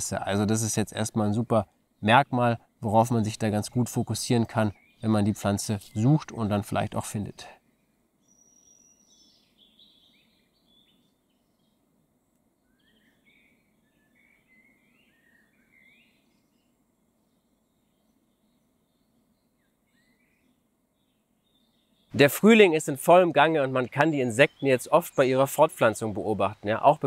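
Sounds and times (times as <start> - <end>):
distant songbirds chirping: 0.0 - 27.0.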